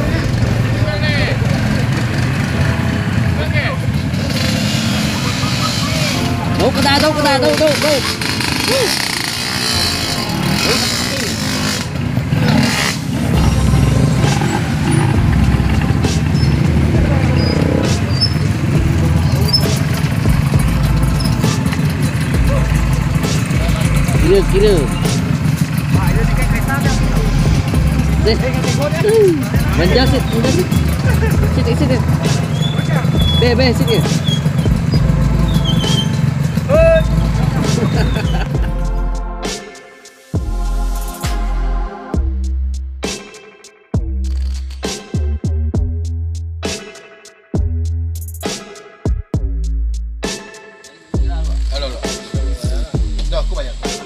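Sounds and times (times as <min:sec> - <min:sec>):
people talking: 0:00.0 - 0:02.2, 0:03.2 - 0:11.8, 0:13.3 - 0:19.9, 0:22.3 - 0:36.1, 0:36.7 - 0:39.0, 0:51.2 - 0:54.0
motorcycles pulling away: 0:00.0 - 0:39.5
high-pitched shout: 0:08.6 - 0:09.1, 0:29.0 - 0:29.4.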